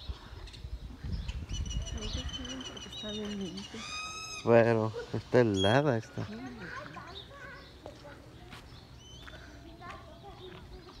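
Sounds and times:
bird chirps: 0.4 - 4.6, 8.6 - 9.4
distant voices: 1.6 - 11.0.

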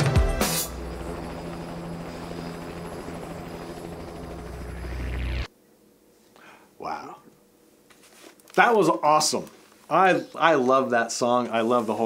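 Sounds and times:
rising sweep: 0.0 - 5.5
low mechanical throbbing drone: 0.3 - 5.5.

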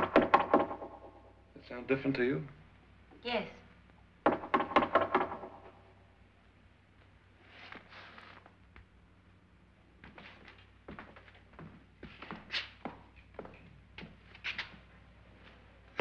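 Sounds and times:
low steady hum: 0.0 - 12.2
footsteps on hard floor: 10.0 - 15.6.

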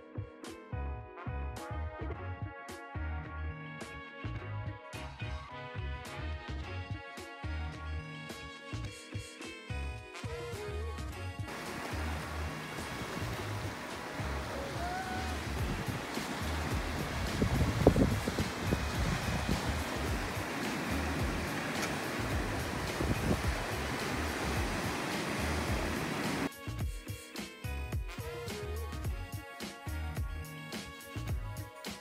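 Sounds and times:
music with low beat: 9.7 - 31.9
waves washing over rocks: 11.5 - 26.5.

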